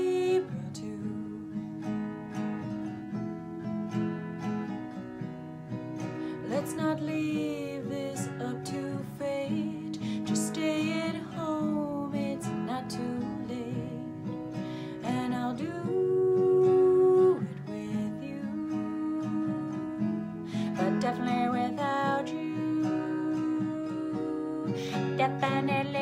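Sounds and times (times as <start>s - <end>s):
woman singing: 0.0s - 2.3s, 6.3s - 26.0s
acoustic guitar strumming: 0.0s - 26.0s.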